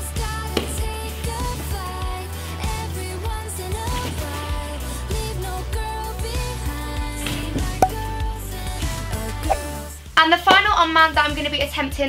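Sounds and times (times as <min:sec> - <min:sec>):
pop music with steady beat: 0:00.0 - 0:11.4.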